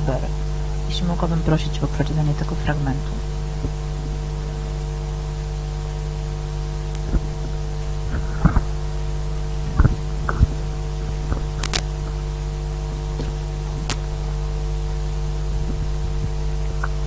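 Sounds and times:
electrical hum with hiss: 0:00.0 - 0:17.0.

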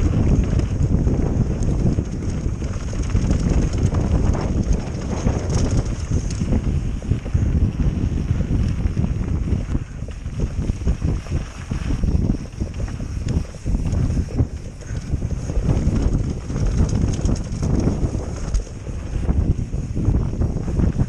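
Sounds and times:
faint clicks and rattles: 0:00.0 - 0:07.0, 0:12.4 - 0:19.3
bike tyres rumbling on dirt: 0:00.0 - 0:21.0
wind buffeting microphone: 0:00.0 - 0:21.0.

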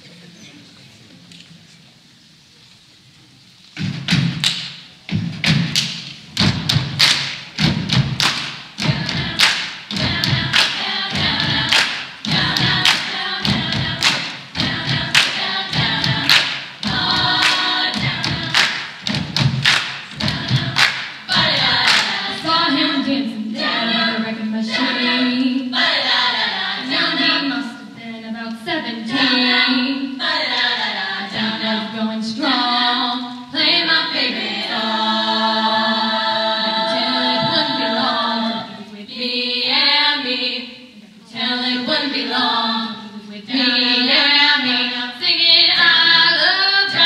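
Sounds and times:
low thumps: 0:03.8 - 0:23.0
hand claps: 0:04.4 - 0:04.8, 0:05.4 - 0:22.3
women singing in close harmony: 0:08.2 - 0:47.0.

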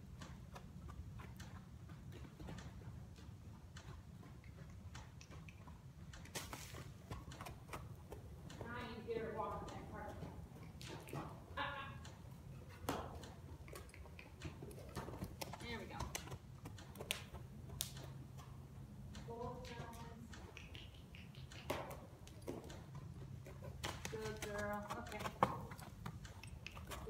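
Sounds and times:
hooves on soft dirt: 0:00.0 - 0:20.2, 0:22.0 - 0:27.0.

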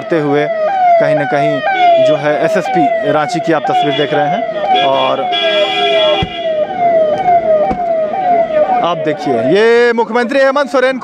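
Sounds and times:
siren wailing: 0:00.0 - 0:11.0.

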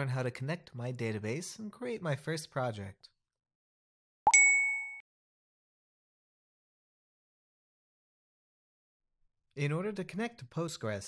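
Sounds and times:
chime ding: 0:04.3 - 0:05.0.

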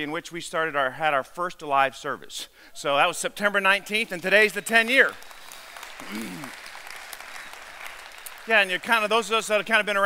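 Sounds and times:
congregation applauding: 0:03.9 - 0:10.0.

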